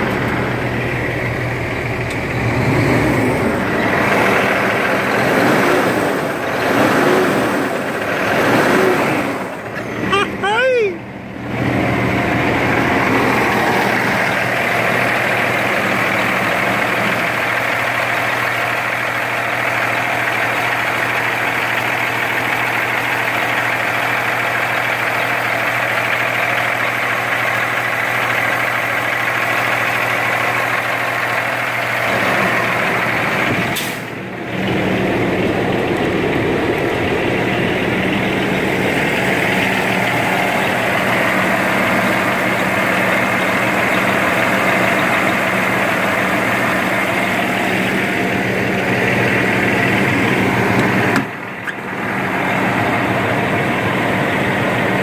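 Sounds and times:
diesel engine idling: 0:00.0 - 0:55.0.

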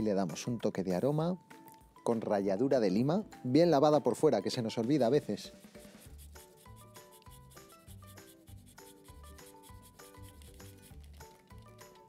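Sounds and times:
soft background music: 0:00.0 - 0:12.0
lime being grated: 0:05.4 - 0:11.6.

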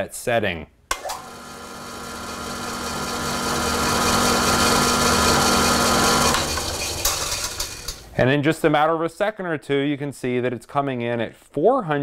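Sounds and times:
drill press motor hum and whine: 0:01.1 - 0:07.6.

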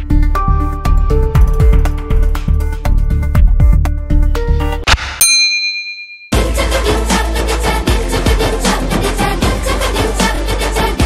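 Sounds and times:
bright electronic ding: 0:05.2 - 0:06.4.

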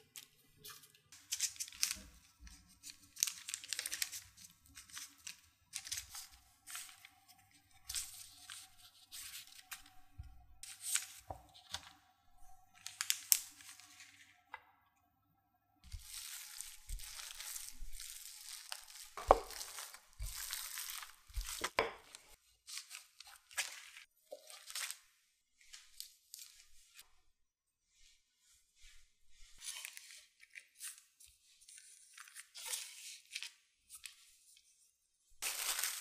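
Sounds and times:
baking paper crackling: 0:00.6 - 0:12.0, 0:12.7 - 0:14.4, 0:15.8 - 0:27.0, 0:35.4 - 0:36.0.

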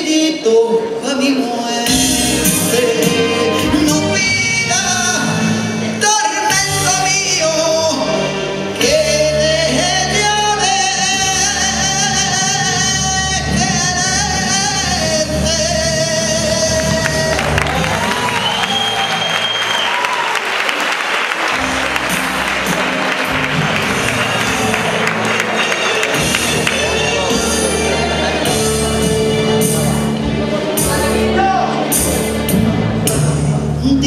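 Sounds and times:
recorded backing music: 0:00.0 - 0:34.0
audience applause: 0:16.8 - 0:28.7.

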